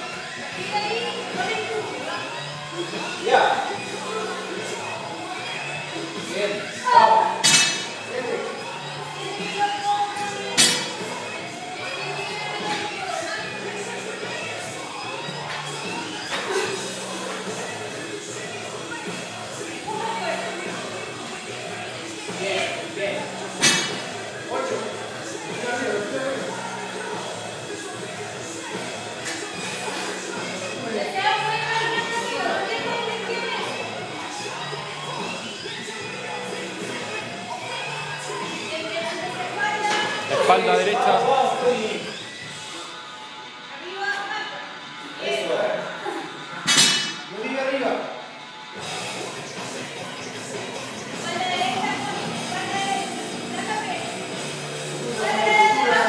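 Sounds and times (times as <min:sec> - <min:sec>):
background music: 0:00.0 - 0:56.0
voices: 0:00.0 - 0:56.0.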